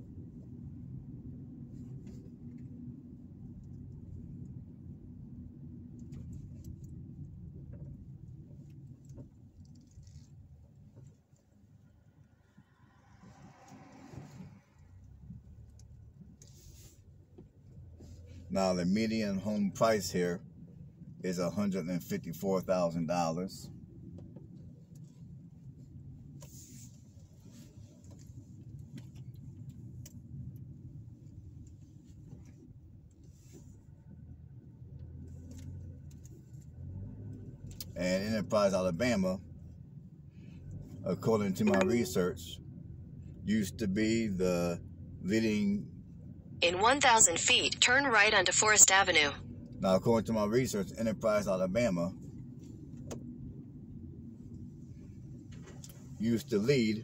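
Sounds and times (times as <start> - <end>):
road noise: 0.0 - 21.2
car engine rumble: 0.0 - 57.0.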